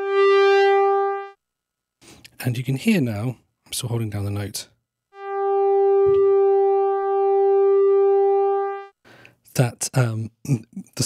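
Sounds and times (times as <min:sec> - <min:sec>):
synthesizer pulse-wave note: 0:00.0 - 0:01.4, 0:05.2 - 0:09.0.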